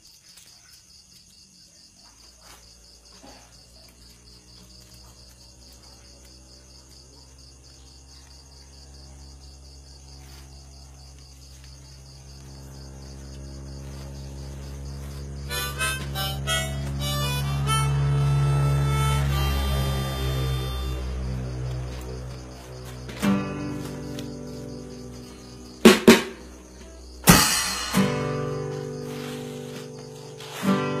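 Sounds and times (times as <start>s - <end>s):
crickets chirping: 0.0s - 31.0s
low hum: 8.2s - 23.2s.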